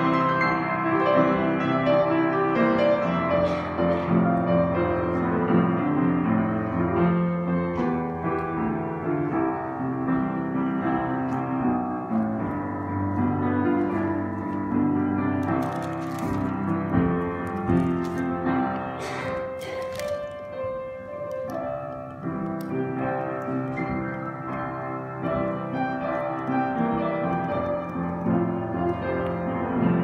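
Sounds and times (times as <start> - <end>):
upright piano playing: 0.0 - 30.0.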